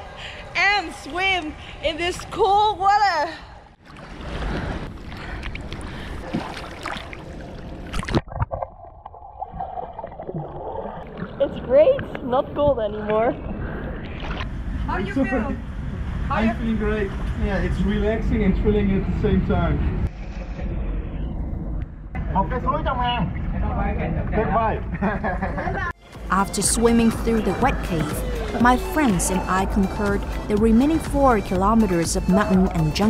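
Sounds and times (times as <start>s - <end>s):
water splashing and sloshing: 1.0s - 14.5s, 26.0s - 33.0s
muffled underwater wash: 3.8s - 19.2s.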